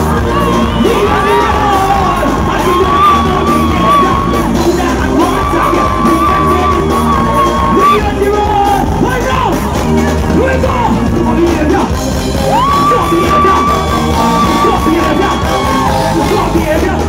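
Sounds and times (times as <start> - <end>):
crowd cheering and yelling: 0.0 - 17.0
live soca music through a pa: 0.0 - 17.0.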